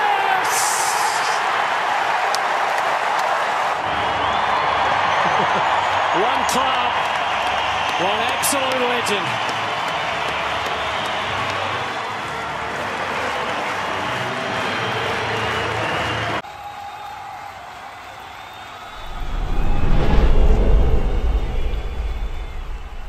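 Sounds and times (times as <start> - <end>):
stadium crowd cheering and applauding: 0.0 - 23.0
deep rumbling whoosh: 19.0 - 23.0.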